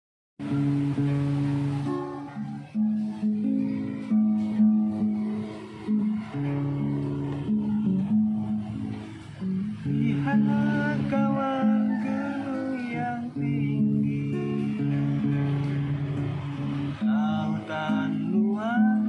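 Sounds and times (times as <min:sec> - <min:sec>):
acoustic guitar chords: 0:00.4 - 0:19.0.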